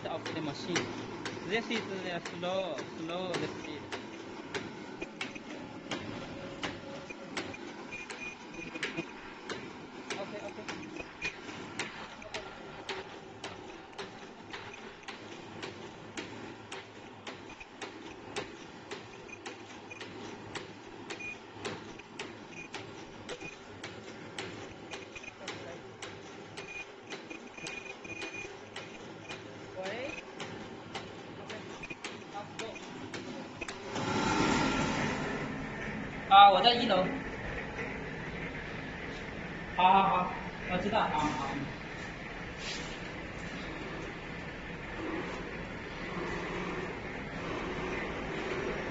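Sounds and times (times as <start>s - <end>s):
sharp machine clicks: 0.0s - 35.9s
machine humming: 0.0s - 48.9s.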